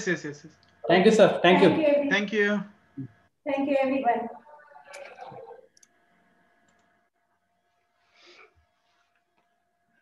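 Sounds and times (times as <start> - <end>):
person speaking: 0.8 - 3.1.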